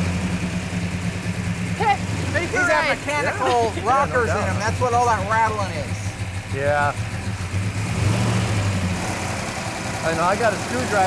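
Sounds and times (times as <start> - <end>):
car engine idling with rattle: 0.0 - 11.0
people talking: 1.8 - 7.0, 10.0 - 11.0.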